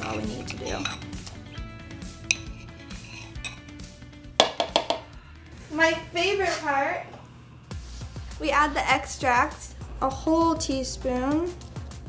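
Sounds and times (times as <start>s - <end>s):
metal utensil clinking on ceramic: 0.0s - 1.3s, 2.2s - 3.8s
background music: 0.0s - 12.0s.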